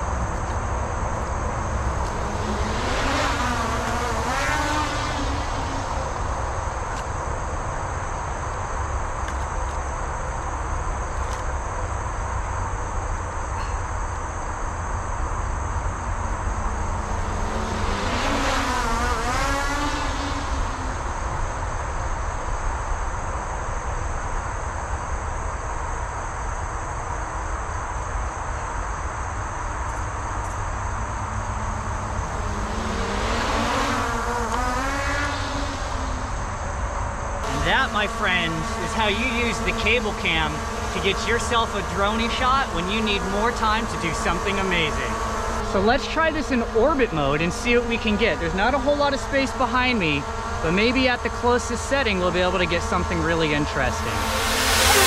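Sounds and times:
drone propellers buzzing: 0.0 - 55.0.

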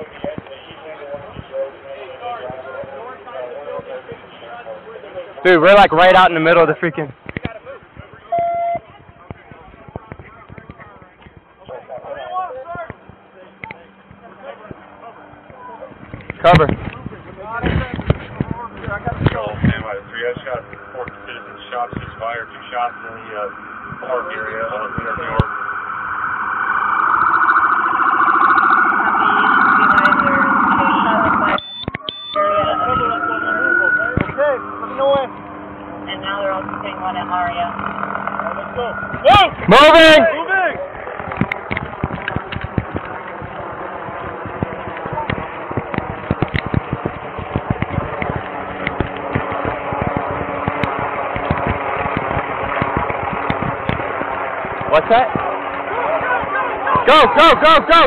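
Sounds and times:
vehicle noise: 0.0 - 58.0
police siren wailing: 20.5 - 40.3.

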